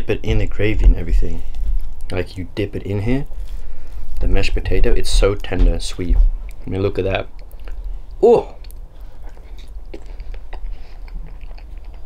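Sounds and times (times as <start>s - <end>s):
person chewing: 3.2s - 4.2s, 7.3s - 12.0s
wet mouth clicks: 7.3s - 12.0s.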